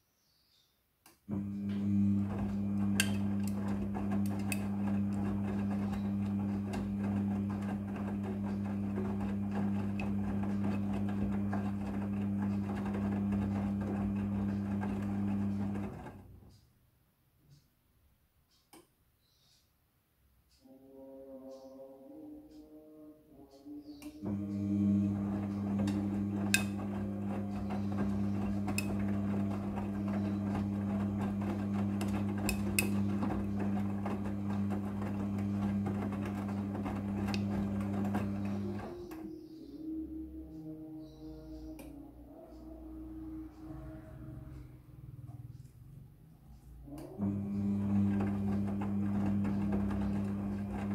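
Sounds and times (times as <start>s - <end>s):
washing machine motor hum: 1.2s - 16.6s, 20.6s - 50.9s.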